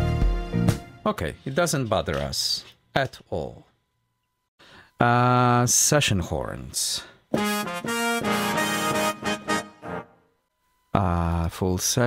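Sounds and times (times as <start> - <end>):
horn section chords: 7.4 - 10.3.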